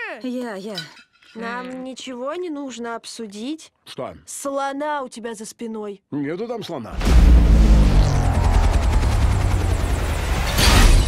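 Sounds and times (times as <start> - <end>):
deep rumble: 7.0 - 10.8
falling tones: 7.0 - 11.0
trailer music: 7.0 - 11.0.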